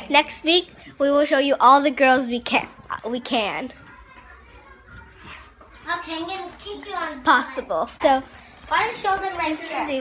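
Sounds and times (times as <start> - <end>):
girls chattering: 0.0 - 10.0
girl talking close to microphone: 5.8 - 10.0.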